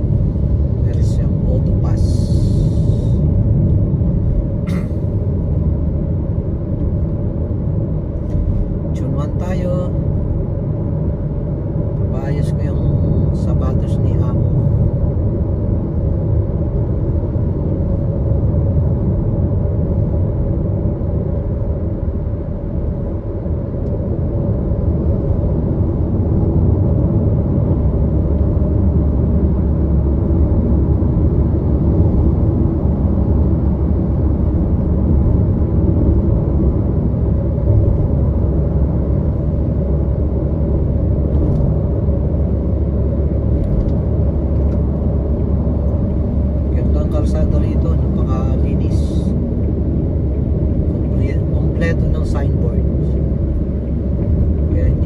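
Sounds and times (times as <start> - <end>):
road and engine rumble in vehicle: 0.0 - 55.0.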